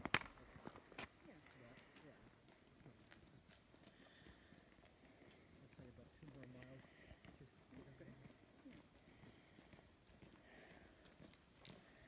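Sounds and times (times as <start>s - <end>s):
faint ticks and scuffs: 0.5s - 12.0s.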